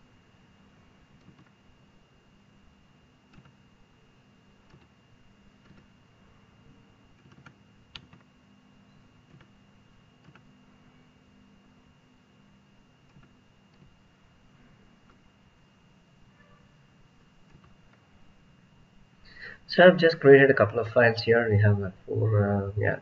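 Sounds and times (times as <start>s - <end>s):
faint electrical hum: 0.0s - 23.0s
mouse and keyboard clicks: 3.3s - 3.6s, 4.7s - 4.9s, 17.4s - 17.8s.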